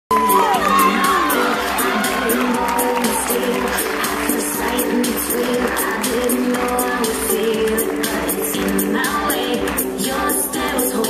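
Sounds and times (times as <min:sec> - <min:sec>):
falling whoops: 0:00.1 - 0:03.4
audience cheering and shouting: 0:00.1 - 0:07.0
music: 0:00.1 - 0:11.0.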